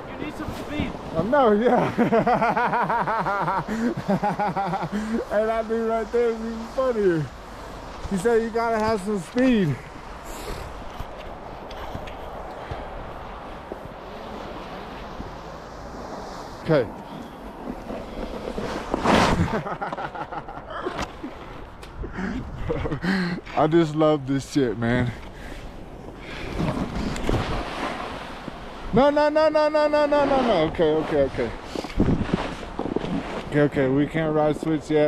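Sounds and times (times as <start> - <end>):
snowboard scraping on packed snow: 0.0 - 21.6, 24.4 - 35.0
wind rushing over microphone: 0.0 - 35.0.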